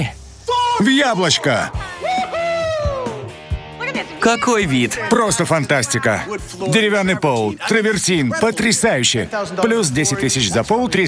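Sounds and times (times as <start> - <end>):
high voice exclaiming with delight: 1.8 - 3.3.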